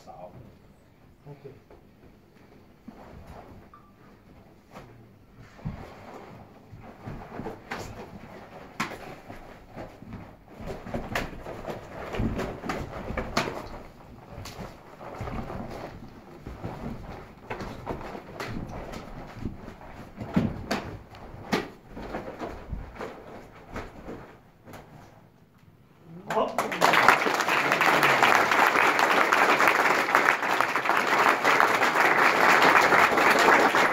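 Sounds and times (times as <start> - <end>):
footwork thuds: 5.5 - 25.0.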